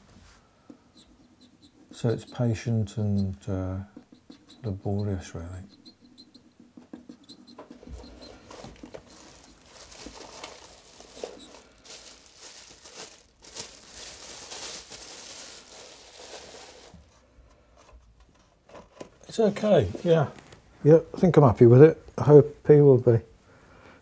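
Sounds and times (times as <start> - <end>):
plastic sheet crinkling: 7.8 - 17.2.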